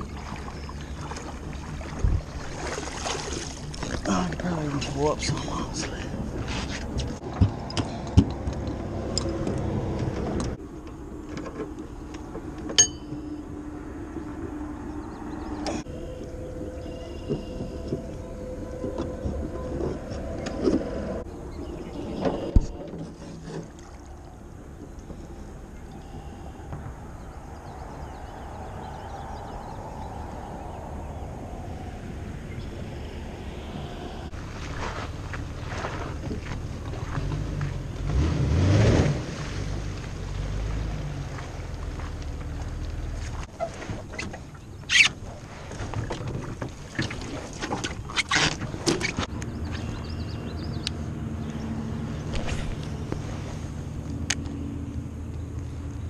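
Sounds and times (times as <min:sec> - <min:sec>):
vehicle engine rumble: 0:00.0 - 0:56.0.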